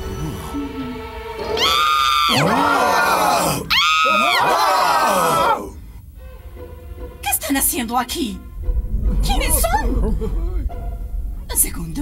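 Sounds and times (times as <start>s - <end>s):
woman screaming: 1.6s - 5.7s.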